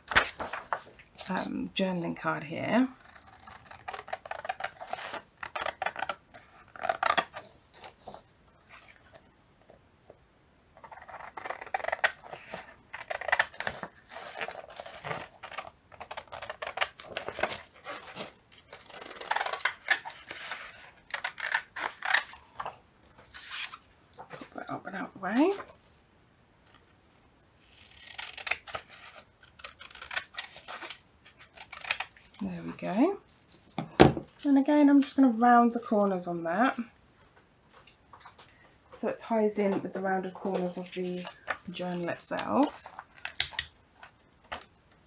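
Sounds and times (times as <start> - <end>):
paper rustling: 0.0 - 1.4.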